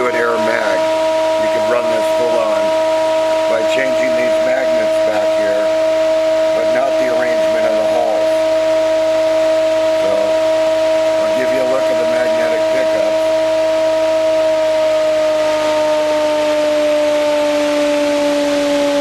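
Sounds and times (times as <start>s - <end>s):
electric motor high-pitched whine: 0.0s - 19.0s.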